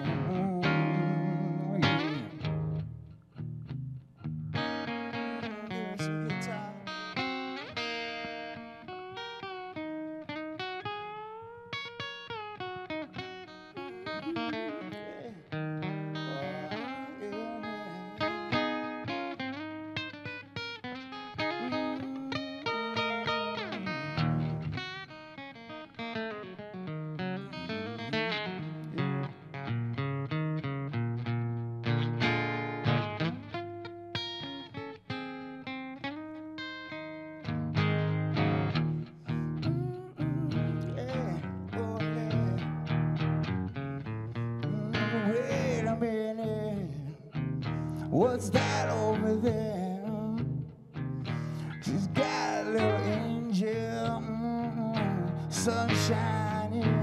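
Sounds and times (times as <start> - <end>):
blues guitar playing: 0.0 - 57.0.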